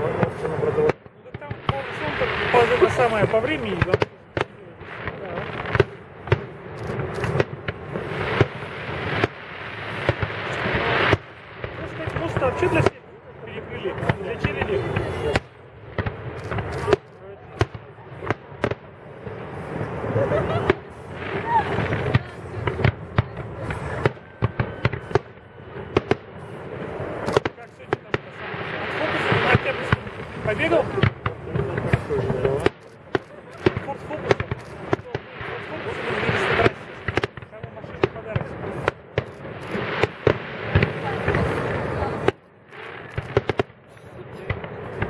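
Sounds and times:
firework shells bursting: 0.0s - 13.0s, 13.9s - 45.0s.

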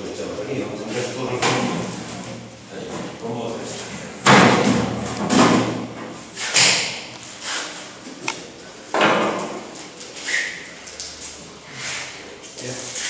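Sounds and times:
people talking in large room: 0.0s - 5.2s.

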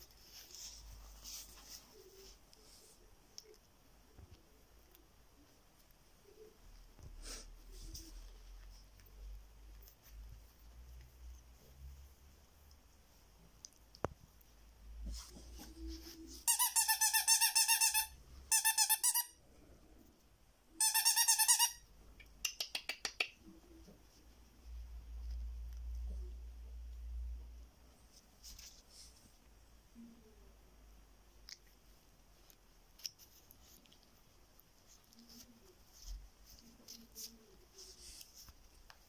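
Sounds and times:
plush toy rustling: 0.0s - 3.0s, 15.0s - 17.9s, 32.4s - 39.0s
squeaky pet toy: 16.4s - 19.4s, 20.8s - 21.9s.

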